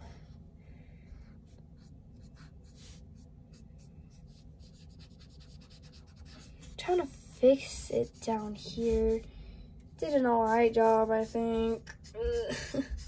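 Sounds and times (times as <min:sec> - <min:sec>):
marker scratching on paper: 0:01.5 - 0:09.3, 0:09.9 - 0:13.0.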